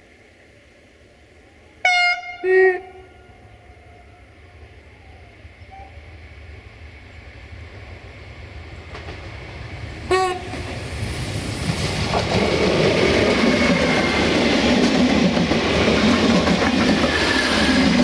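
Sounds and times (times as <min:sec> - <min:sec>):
diesel train passing: 0:00.0 - 0:18.0
train horn blast: 0:01.8 - 0:04.3, 0:10.1 - 0:10.6.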